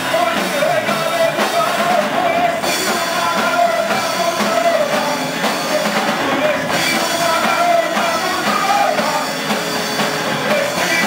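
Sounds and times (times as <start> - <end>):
drum kit: 0.0 - 11.0
electric guitar: 0.0 - 11.0
person singing: 0.0 - 11.0.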